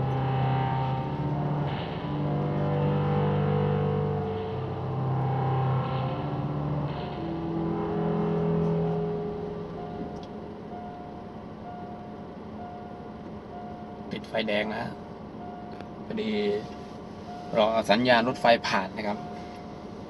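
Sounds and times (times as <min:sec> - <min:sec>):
electric guitar music: 0:00.0 - 0:12.3.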